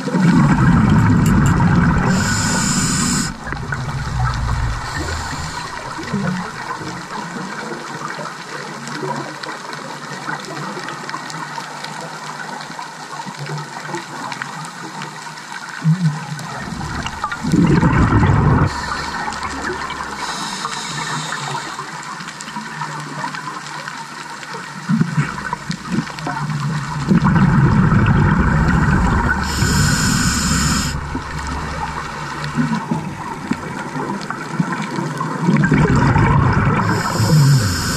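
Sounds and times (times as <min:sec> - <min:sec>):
gushes of exhaled bubbles: 0:00.0 - 0:08.2, 0:15.9 - 0:37.9
underwater bubbling: 0:00.0 - 0:09.1, 0:15.4 - 0:37.9
brief high hiss: 0:02.0 - 0:06.6, 0:18.7 - 0:21.9, 0:29.3 - 0:33.3.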